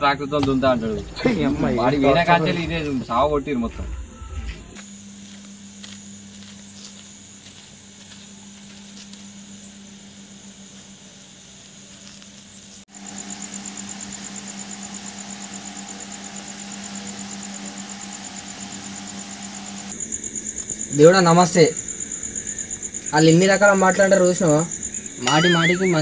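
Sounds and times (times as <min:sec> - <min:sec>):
crickets chirping: 0:00.0 - 0:26.0
steady low hum: 0:00.0 - 0:26.0.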